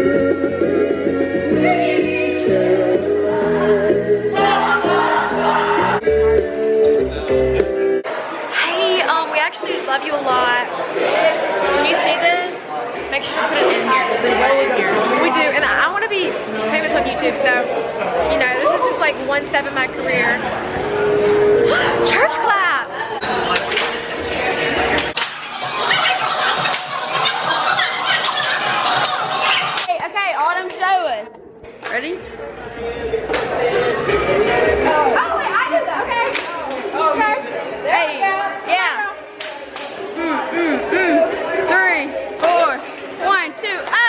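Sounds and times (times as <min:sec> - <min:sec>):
young women chattering: 0:08.4 - 0:20.5, 0:25.8 - 0:32.2, 0:34.7 - 0:44.0.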